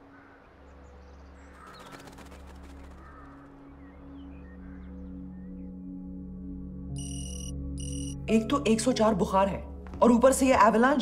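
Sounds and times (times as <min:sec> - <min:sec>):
soft background music drone: 0:00.0 - 0:11.0
flutter of rapid clicks: 0:01.6 - 0:03.6.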